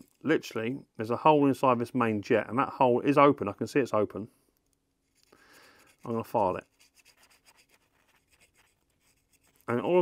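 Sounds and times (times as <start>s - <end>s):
wire file scratching metal: 5.0s - 10.0s.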